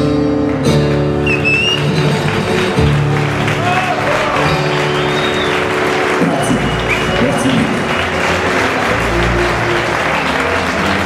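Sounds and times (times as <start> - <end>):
audience applauding: 0.4 - 11.0.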